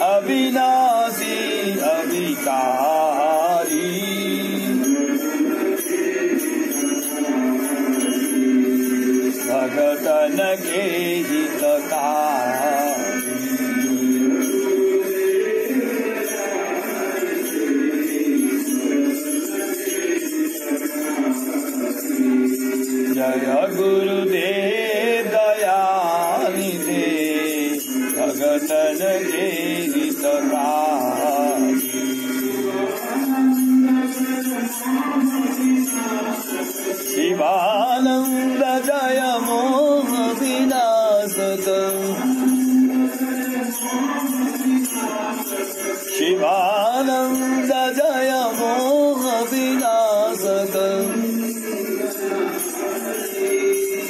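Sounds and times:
jingling bell percussion: 0.0s - 54.0s
person singing devotional song: 0.0s - 54.0s.

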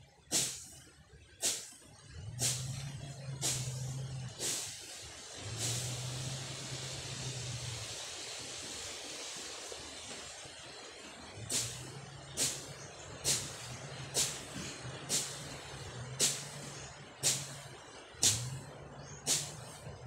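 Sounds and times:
steady hiss: 0.1s - 20.0s
low hum: 1.9s - 20.0s
machete swishing through grass: 19.3s - 19.6s.

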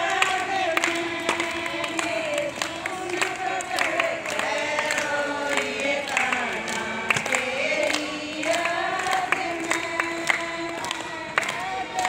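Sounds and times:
hand claps: 0.0s - 12.0s
women singing together: 0.0s - 12.0s.

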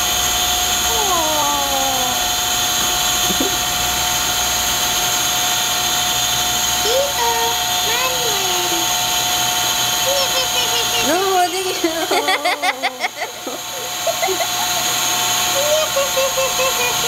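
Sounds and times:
loud mechanical drone: 0.0s - 17.0s
steady whining tones: 0.0s - 17.0s.

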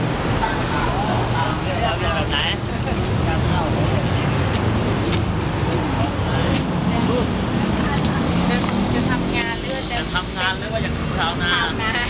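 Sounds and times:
traffic rumble: 0.0s - 12.0s
people talking: 0.4s - 4.4s, 5.6s - 12.0s.

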